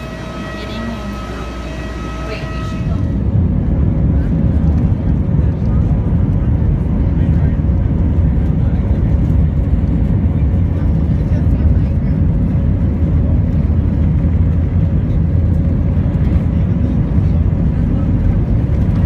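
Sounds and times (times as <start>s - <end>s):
airliner taxiing rumble: 0.0s - 19.0s.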